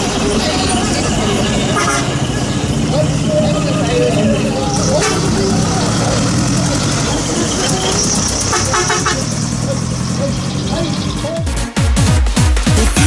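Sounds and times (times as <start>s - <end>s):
people talking: 0.0s - 11.5s
truck engine pulling away: 0.0s - 11.5s.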